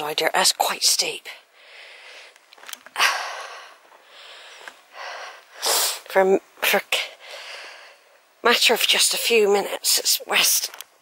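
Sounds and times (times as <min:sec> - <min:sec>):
person exhaling noisily: 0:03.0 - 0:06.1
sharp hissing intake of breath: 0:03.3 - 0:06.1.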